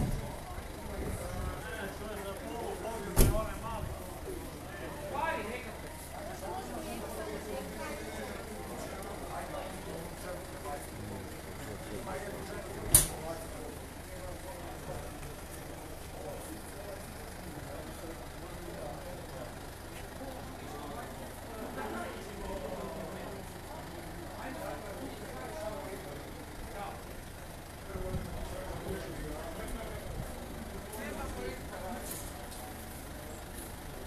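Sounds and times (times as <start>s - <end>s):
crowd chatter: 0.0s - 34.0s
van engine idling: 0.0s - 34.0s.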